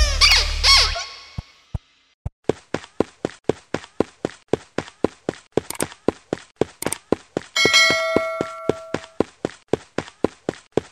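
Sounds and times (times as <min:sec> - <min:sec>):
sharp clicks: 0:05.7 - 0:06.0, 0:06.8 - 0:07.0
notification bell chime: 0:07.6 - 0:09.2.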